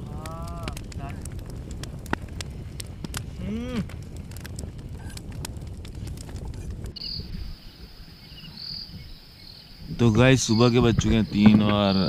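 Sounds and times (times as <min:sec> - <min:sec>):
low rumble: 0:00.0 - 0:07.7
night insects trilling: 0:07.0 - 0:12.0.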